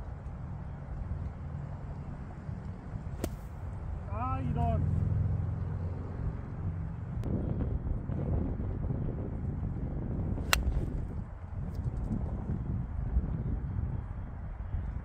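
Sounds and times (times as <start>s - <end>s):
golf club striking ball: 3.2s - 3.6s, 10.4s - 11.0s
wind rumble on microphone: 5.7s - 15.0s.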